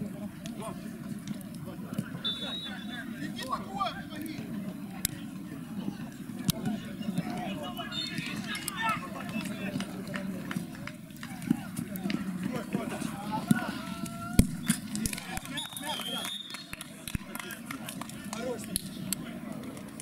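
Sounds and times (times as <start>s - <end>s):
players shouting: 6.5s - 16.3s.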